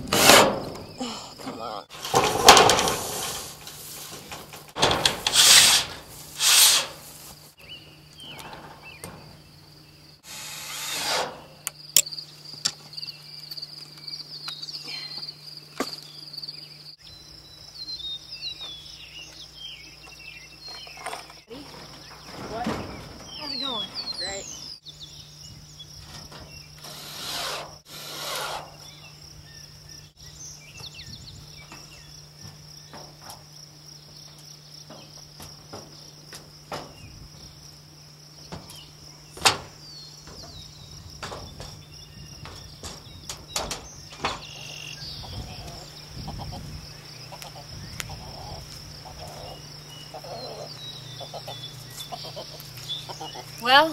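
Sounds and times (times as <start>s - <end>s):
insects chorus: 0.0s - 53.9s
cordless drill driving screws into metal: 4.8s - 6.9s, 10.3s - 11.5s
birds chirping: 6.5s - 10.3s, 11.4s - 27.6s, 28.2s - 53.9s.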